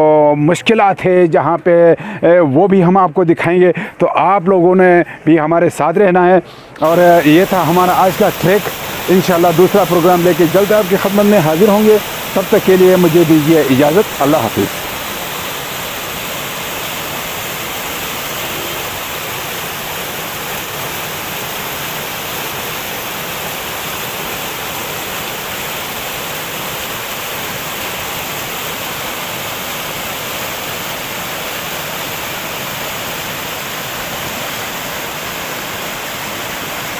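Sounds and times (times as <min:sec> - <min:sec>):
river rushing over boulders: 0:06.7 - 0:36.9.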